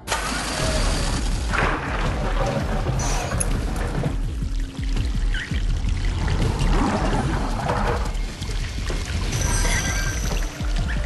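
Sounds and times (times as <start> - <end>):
film score music: 0.0 - 11.0
water pouring into glass box: 0.6 - 11.0.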